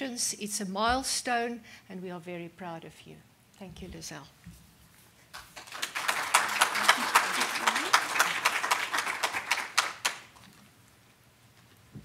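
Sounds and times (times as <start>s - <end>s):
audience applauding: 5.4s - 10.5s.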